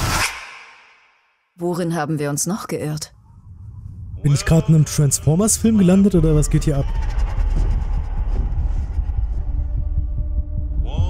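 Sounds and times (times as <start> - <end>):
deep low rumble of score: 3.1 - 11.0.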